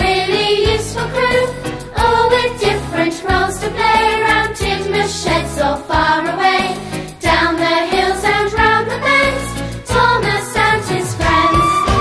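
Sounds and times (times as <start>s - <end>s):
voices singing: 0.0s - 12.0s
band accompaniment with bass: 8.6s - 12.0s.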